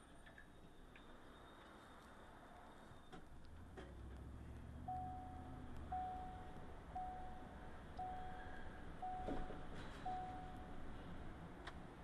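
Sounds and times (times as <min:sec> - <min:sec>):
low rumble of moving car: 0:02.3 - 0:12.0
electronic warning beep: 0:04.9 - 0:09.5, 0:10.1 - 0:10.7.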